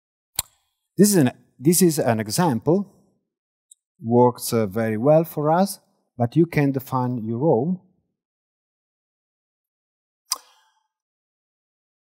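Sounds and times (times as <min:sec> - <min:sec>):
sharp click: 0:10.3 - 0:10.7.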